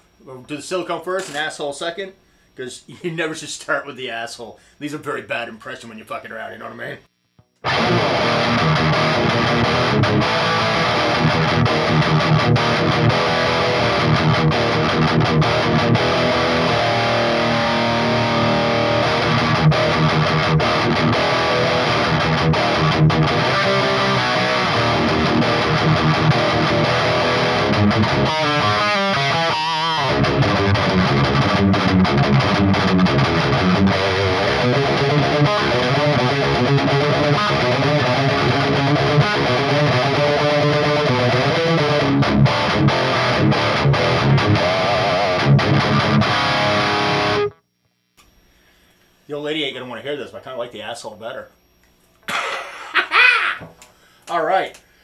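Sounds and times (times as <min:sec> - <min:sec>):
distorted electric guitar riffing: 0:07.2 - 0:47.7.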